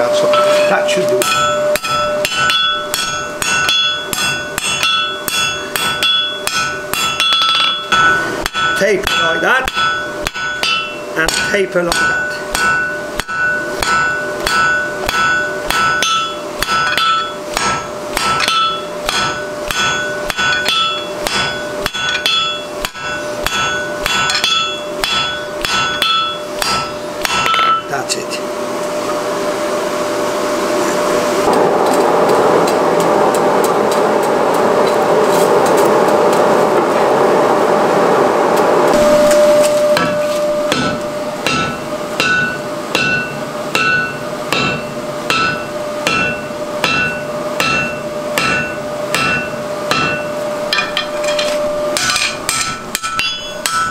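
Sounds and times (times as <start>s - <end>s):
hammer striking steel on anvil: 0.0s - 28.2s, 38.9s - 53.9s
steady rushing noise: 16.6s - 53.0s.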